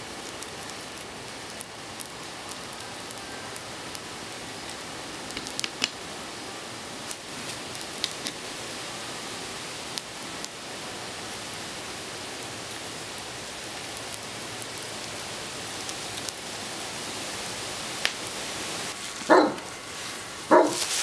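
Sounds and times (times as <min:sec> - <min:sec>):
coals crackling: 0:00.0 - 0:21.0
forge fire rushing hiss: 0:00.0 - 0:21.0
dog barking: 0:19.3 - 0:19.7, 0:20.5 - 0:20.9.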